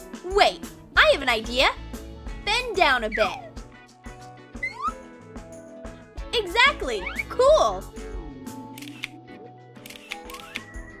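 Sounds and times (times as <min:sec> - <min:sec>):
background music: 0:00.0 - 0:11.0
camera shutter clicking: 0:08.8 - 0:09.2, 0:09.8 - 0:10.7.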